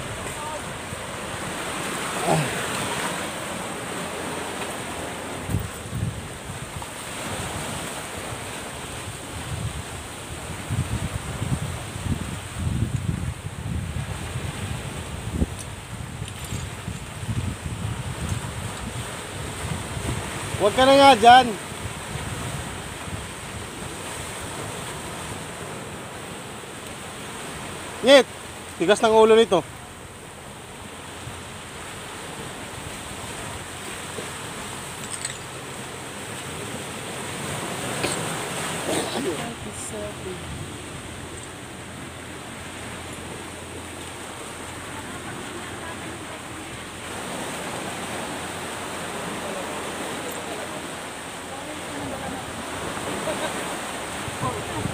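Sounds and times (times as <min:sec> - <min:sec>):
sea surf: 0:00.0 - 0:54.9
wind on microphone: 0:05.2 - 0:20.6, 0:21.7 - 0:26.3, 0:36.5 - 0:54.9.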